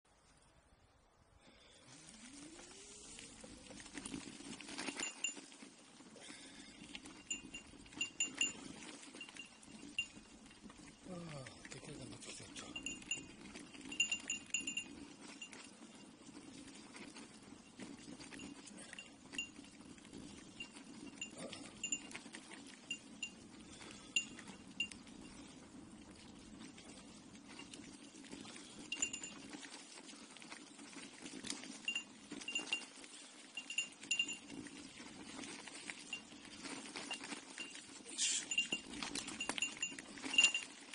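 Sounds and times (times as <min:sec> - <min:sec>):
low hum of riding: 0:00.1 - 0:40.9
bicycle bell jingling: 0:03.7 - 0:06.1, 0:06.8 - 0:11.0, 0:12.4 - 0:40.9.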